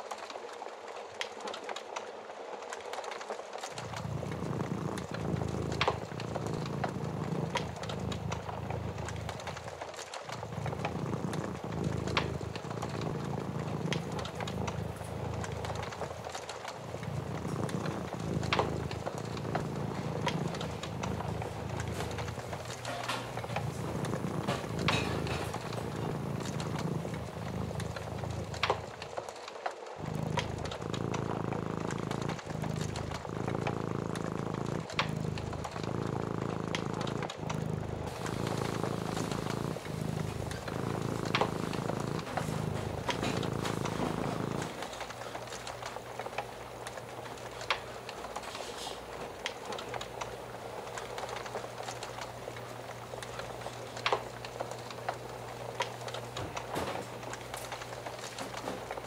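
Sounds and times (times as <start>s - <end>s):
wood fire crackling: 0.0s - 59.0s
cat purring: 2.9s - 59.0s.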